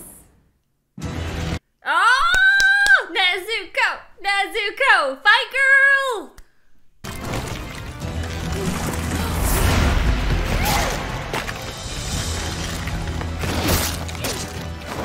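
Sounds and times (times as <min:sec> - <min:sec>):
fight crashes and hits: 0:07.0 - 0:15.0
dramatic film music: 0:07.1 - 0:15.0.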